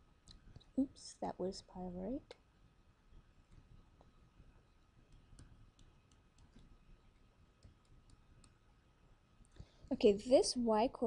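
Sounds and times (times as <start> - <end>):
stylus tapping on tablet screen: 3.1 - 8.7.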